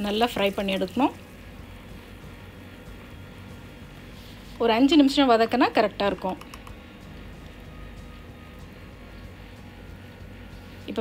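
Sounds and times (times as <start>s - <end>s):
faint music: 0.0s - 11.0s
faint sizzle of frying: 0.0s - 11.0s.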